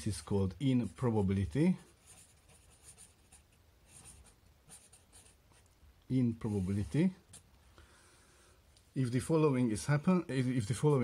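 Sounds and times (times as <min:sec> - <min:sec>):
marker pen scratching on surface: 0:00.7 - 0:05.7, 0:06.4 - 0:07.5.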